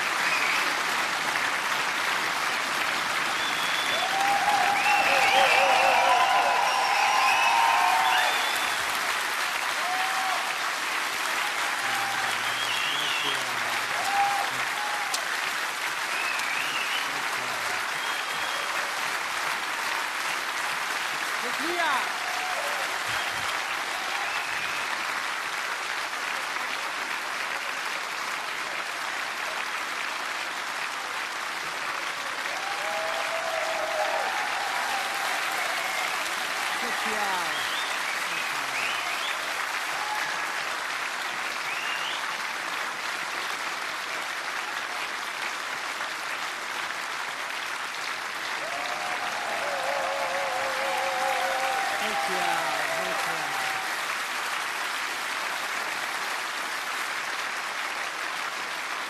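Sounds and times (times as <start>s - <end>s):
cheers and whistles: 0.0s - 0.9s, 3.2s - 10.6s, 11.3s - 15.2s, 16.1s - 19.0s, 21.4s - 25.2s, 32.4s - 40.7s, 41.5s - 42.4s, 48.6s - 54.2s
audience applauding: 0.0s - 59.0s.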